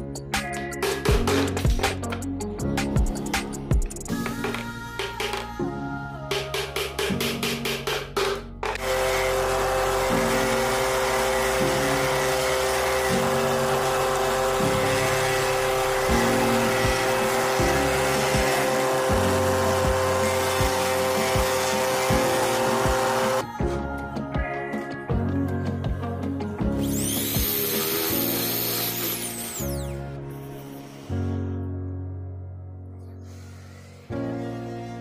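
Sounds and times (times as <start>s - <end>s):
background music with a beat: 0.0s - 8.8s, 16.1s - 29.5s
disc sander humming: 8.7s - 23.4s, 27.0s - 29.8s.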